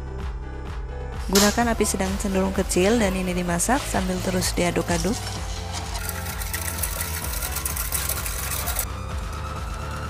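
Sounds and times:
background music: 0:00.0 - 0:10.0
whisk ticking against saucepan: 0:03.9 - 0:08.9.

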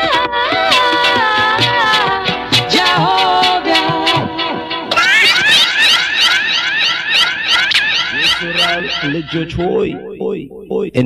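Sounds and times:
electronic siren-like warble: 0:05.0 - 0:11.0.

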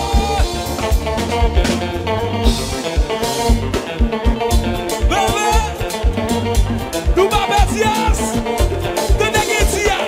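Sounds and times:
dance band playing: 0:00.0 - 0:10.0
drum kit and bass beat: 0:00.0 - 0:10.0
electric guitar: 0:00.0 - 0:10.0
keyboards: 0:00.0 - 0:10.0.

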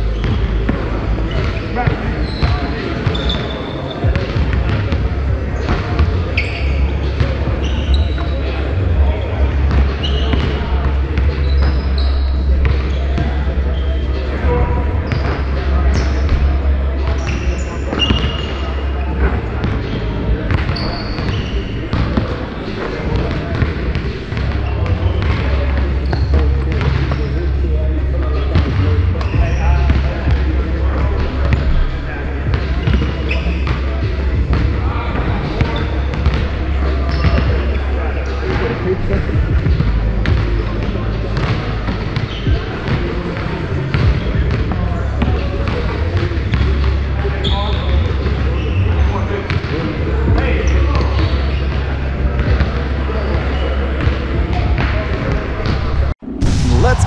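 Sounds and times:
sneaker squeaks: 0:00.0 - 0:30.3, 0:30.9 - 0:34.0, 0:35.5 - 0:39.1, 0:41.4 - 0:55.0
indistinct voices: 0:00.0 - 0:57.0
basketballs bouncing on wooden floor: 0:00.2 - 0:08.3
steady low rumble: 0:56.2 - 0:57.0.

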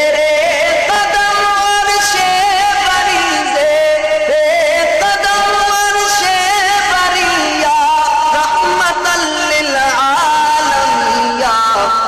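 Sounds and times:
man chanting in held notes: 0:00.0 - 0:12.0.

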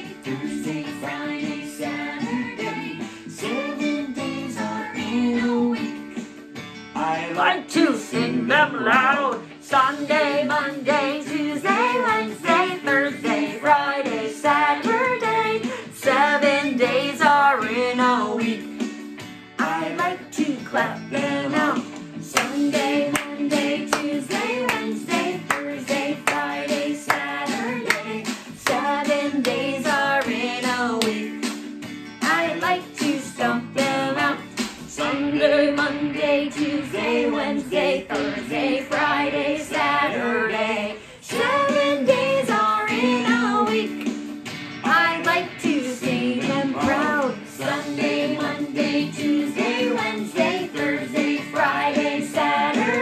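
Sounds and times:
children's song over a beat: 0:00.0 - 0:53.0
hands clapping in rhythm: 0:08.9 - 0:17.4, 0:19.6 - 0:35.1, 0:36.6 - 0:40.4, 0:41.3 - 0:53.0.

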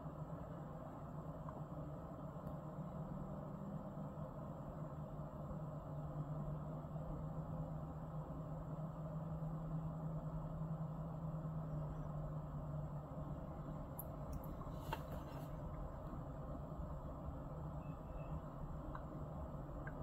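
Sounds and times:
diesel locomotive hum: 0:00.0 - 0:20.0.

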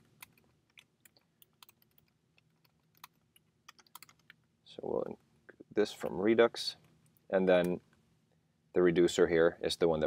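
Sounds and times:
keyboard typing: 0:00.0 - 0:04.4.

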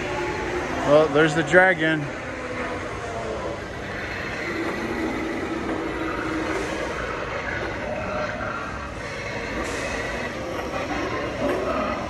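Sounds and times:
store hum: 0:00.0 - 0:12.0.

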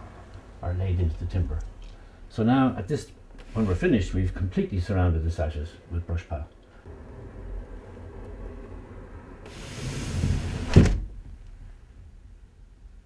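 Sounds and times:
window sash sliding scrape: 0:09.4 - 0:11.2
window sash knocking shut: 0:10.2 - 0:11.2.

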